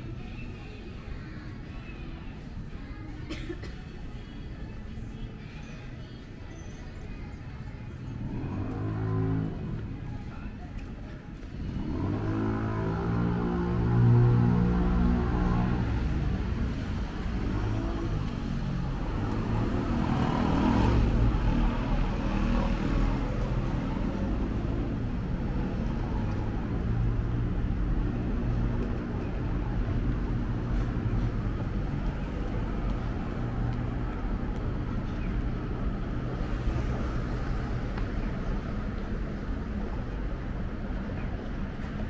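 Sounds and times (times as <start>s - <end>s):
steady road traffic: 0.0s - 42.0s
vehicle passing: 11.5s - 41.0s.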